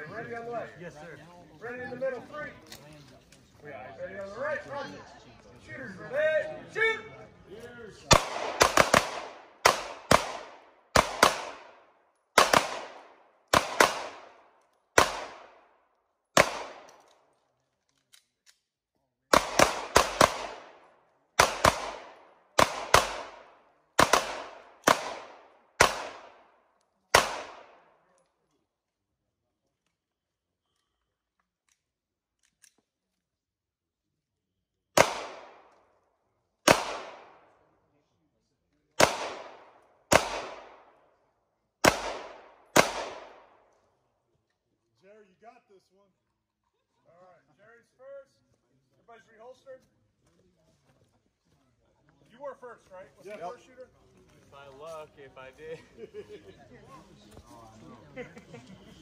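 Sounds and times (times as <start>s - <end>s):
handgun shots: 8.1s - 11.6s, 12.4s - 14.3s, 16.4s - 17.1s, 21.4s - 23.4s, 24.0s - 26.4s, 35.0s - 35.6s, 36.7s - 37.4s, 39.0s - 40.8s, 41.8s - 43.4s.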